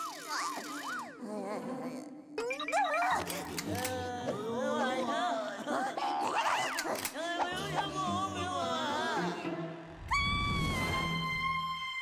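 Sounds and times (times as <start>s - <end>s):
cartoon characters gibberish talking: 2.4s - 7.0s.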